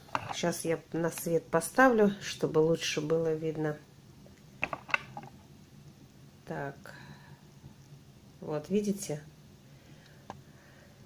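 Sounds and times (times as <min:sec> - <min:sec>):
plastic pot clicking and creaking: 0:04.6 - 0:05.4.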